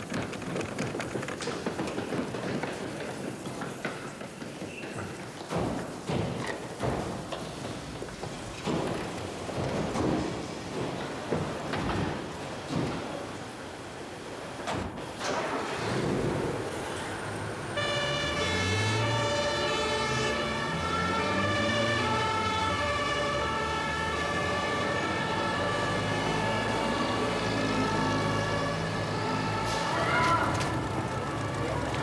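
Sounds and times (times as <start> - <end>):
two-tone emergency siren: 17.2 - 32.0.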